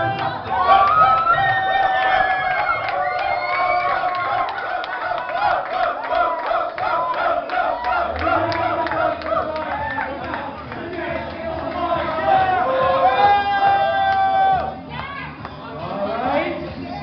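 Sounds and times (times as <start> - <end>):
crowd cheering and shouting: 0.0 - 15.5.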